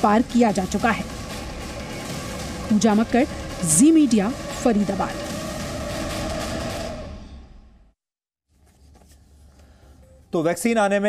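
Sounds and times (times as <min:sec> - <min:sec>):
background music: 0:00.0 - 0:07.3, 0:09.4 - 0:11.0
sound effect swell: 0:00.0 - 0:07.9.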